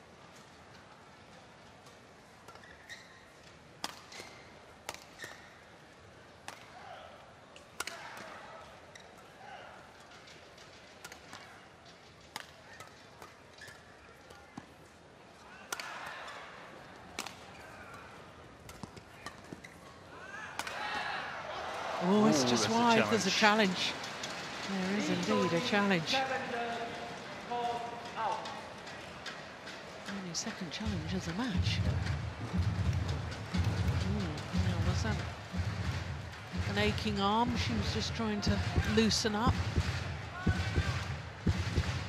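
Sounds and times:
arena crowd noise: 6.0 - 42.0.

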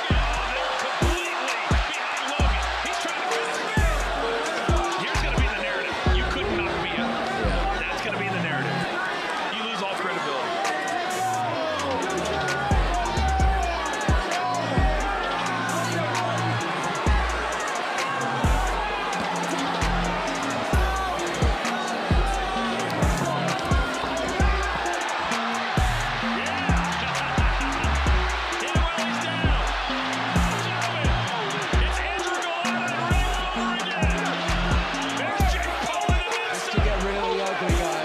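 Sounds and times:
music with heavy bass beat: 0.0 - 6.6, 11.2 - 38.0
voice over music: 0.0 - 9.0.

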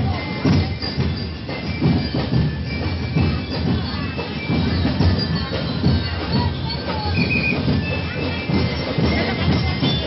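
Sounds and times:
drums pounding a beat: 0.0 - 10.0
noisy crowd: 0.0 - 10.0.

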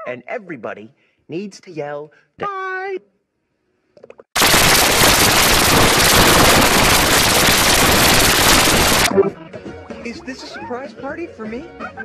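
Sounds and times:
loud harsh crackling noise: 4.4 - 9.2.

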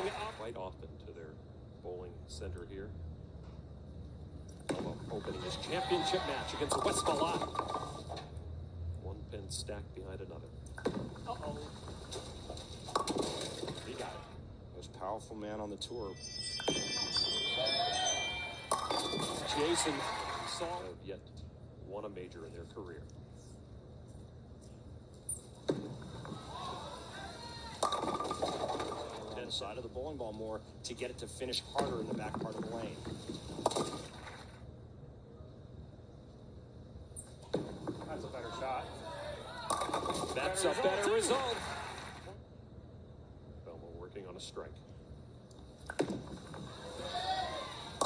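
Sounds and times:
bowling ball rolling: 4.6 - 8.4, 10.8 - 14.4, 16.1 - 20.4, 25.5 - 29.6, 31.7 - 34.6, 37.4 - 38.5, 39.6 - 42.3, 45.8 - 48.0
bowling ball hitting pins: 10.8 - 14.1, 27.7 - 29.4, 31.7 - 34.6, 39.6 - 41.4
thin high whine: 14.8 - 20.9
clatter of pins falling: 27.8 - 29.4.

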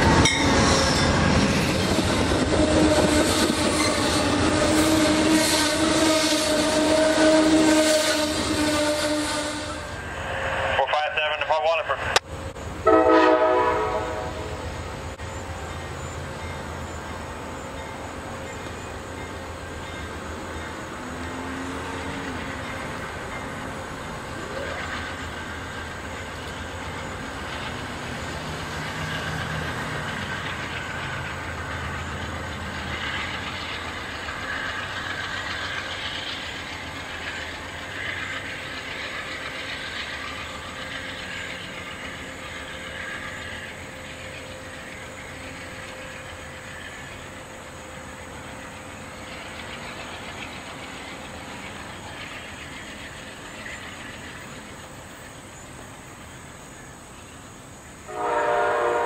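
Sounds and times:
wheel squeal: 0.0 - 10.0
diesel locomotive engine: 0.0 - 59.0
train wheels on rails: 0.0 - 59.0.

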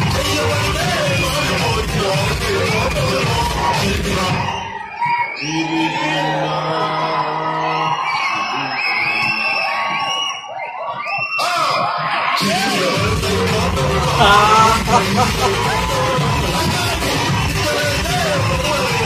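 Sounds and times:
audience yelling and whooping: 14.1 - 16.9.

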